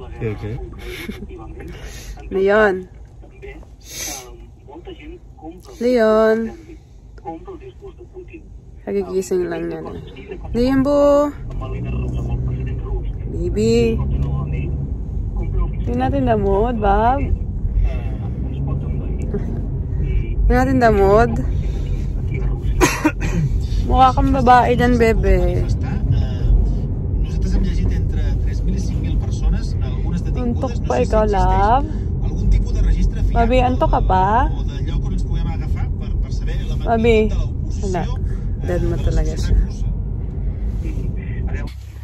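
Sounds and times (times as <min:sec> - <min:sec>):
car cabin hum: 0:09.3 - 0:42.0.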